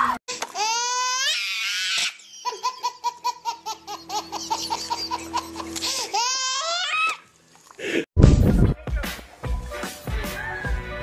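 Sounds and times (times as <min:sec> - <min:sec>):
baby laughing: 0:00.5 - 0:07.2.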